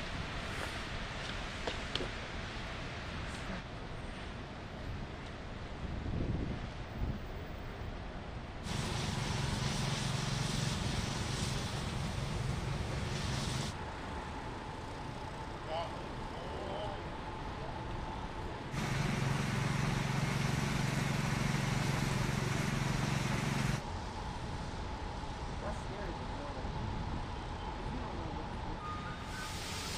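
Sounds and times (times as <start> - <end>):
vehicle engine noise: 8.6 - 29.9.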